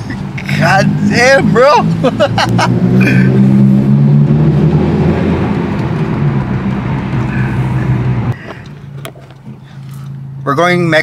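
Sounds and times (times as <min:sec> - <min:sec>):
car engine drone in cabin: 0:00.0 - 0:11.0.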